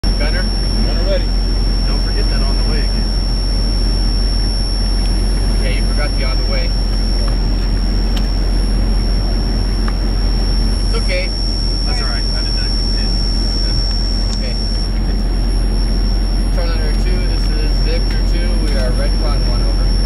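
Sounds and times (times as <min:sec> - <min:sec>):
high-pitched whine: 0:00.0 - 0:20.0
military vehicle engine rumble: 0:00.0 - 0:20.0
voices: 0:00.0 - 0:20.0.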